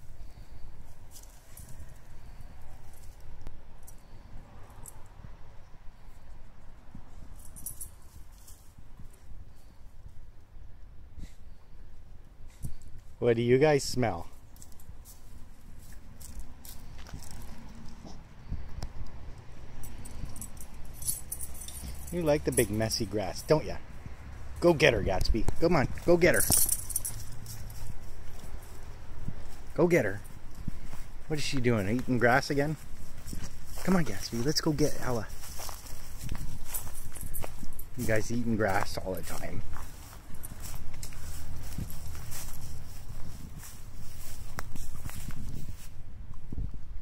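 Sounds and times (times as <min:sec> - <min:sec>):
dog collar tags jingling: 0:07.3 - 0:08.7, 0:19.8 - 0:23.6, 0:24.6 - 0:43.4.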